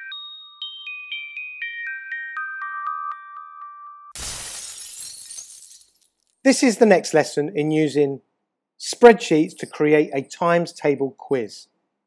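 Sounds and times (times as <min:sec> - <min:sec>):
jingle chimes: 0:00.0 - 0:06.1
crash sound effect: 0:04.2 - 0:04.8.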